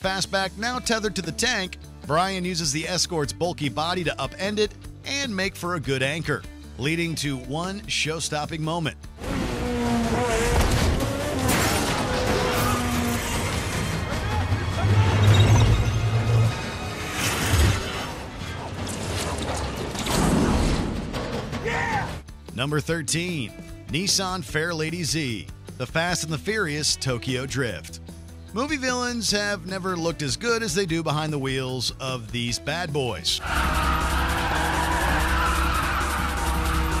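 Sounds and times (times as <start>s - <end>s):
music playing: 0.0s - 18.7s, 21.4s - 37.0s
car engine: 9.2s - 20.1s, 33.4s - 37.0s
tank tracks creaking and clanking: 10.0s - 22.2s, 33.4s - 37.0s
tyres squealing: 33.4s - 37.0s.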